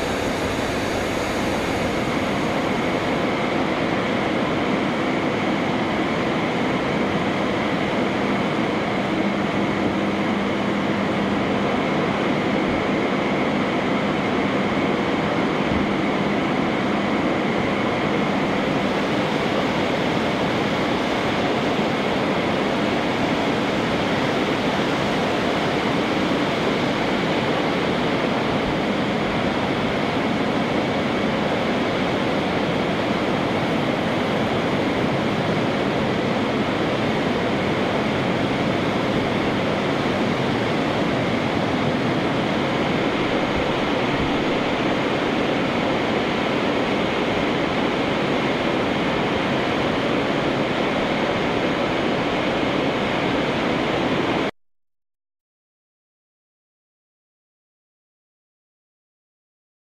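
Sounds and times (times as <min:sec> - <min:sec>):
air rushing from blowers: 0:00.0 - 0:54.5.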